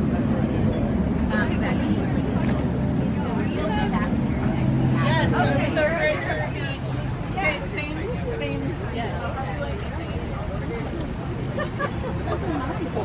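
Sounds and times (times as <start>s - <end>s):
people talking: 0.0s - 13.0s
road traffic rumble: 0.0s - 13.0s.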